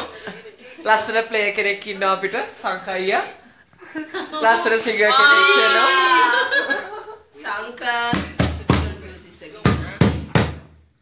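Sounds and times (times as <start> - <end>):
sharp knocks: 9.6 - 10.8.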